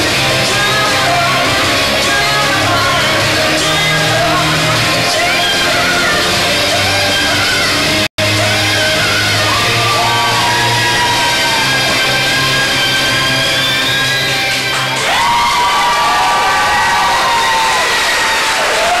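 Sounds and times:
music over sound system: 0.0s - 17.6s
crowd cheering and whooping: 0.0s - 19.0s.

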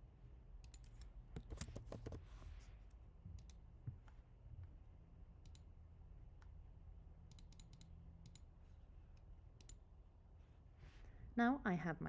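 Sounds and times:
computer mouse click: 0.6s - 2.2s, 3.4s - 3.6s, 5.4s - 5.7s, 7.3s - 8.5s, 9.6s - 9.8s.

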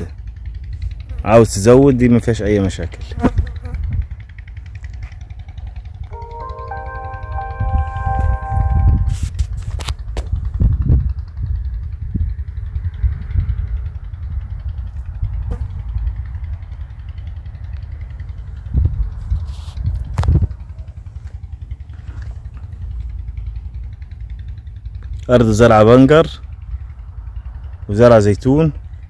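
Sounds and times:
vehicle rumbling on dirt track: 0.0s - 6.1s, 9.2s - 29.0s.

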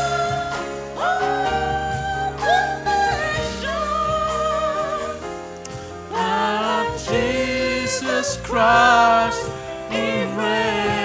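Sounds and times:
gospel singing voice: 0.0s - 11.0s
instrumental chords and bass: 0.0s - 11.0s.

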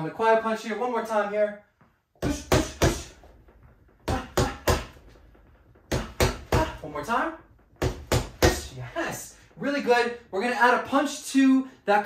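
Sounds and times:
punches thudding on punching bag: 2.2s - 8.9s.

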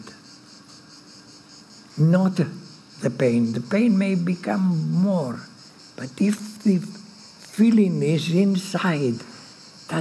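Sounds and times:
faint high-pitched hiss: 0.0s - 10.0s.

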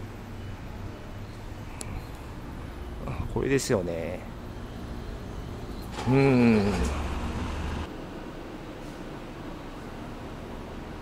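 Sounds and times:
distant traffic hiss: 0.0s - 11.0s
wind: 0.0s - 11.0s.

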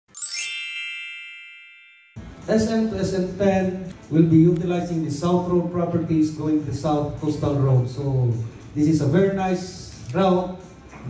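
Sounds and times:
bright shimmering chime: 0.1s - 2.2s.

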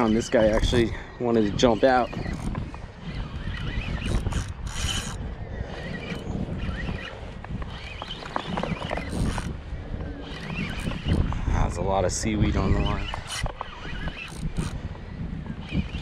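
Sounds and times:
fishing reel winding: 0.0s - 9.6s, 10.2s - 11.4s, 12.8s - 14.9s
wind rumble on microphone: 0.0s - 16.0s.

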